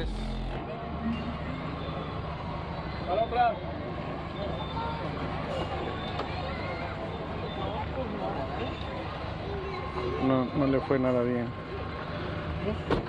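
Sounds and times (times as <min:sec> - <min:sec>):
car engine idling: 0:00.0 - 0:00.6
crowd chatter: 0:00.0 - 0:13.0.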